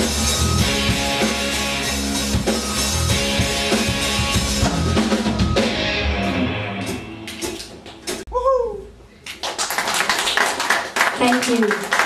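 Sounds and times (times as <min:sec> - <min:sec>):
electric guitars: 0:00.0 - 0:08.2
drum kit: 0:00.0 - 0:08.3
bass guitar: 0:00.0 - 0:08.5.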